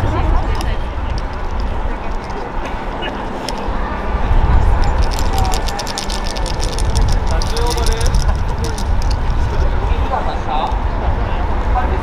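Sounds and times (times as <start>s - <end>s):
wooden clappers clicking: 0.0s - 3.8s, 4.7s - 9.8s
wind rumbling on microphone: 0.0s - 12.0s.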